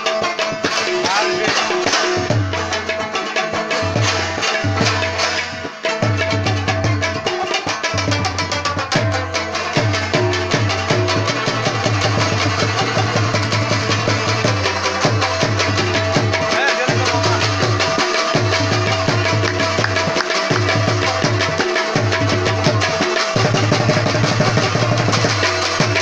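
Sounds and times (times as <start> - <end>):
rubab plucked fast: 0.0 - 26.0
tabla: 0.0 - 26.0.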